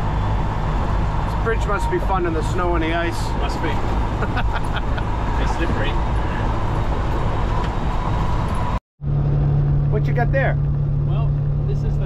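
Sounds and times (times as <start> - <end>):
road noise: 0.0 - 12.0
truck engine drone: 0.0 - 12.0.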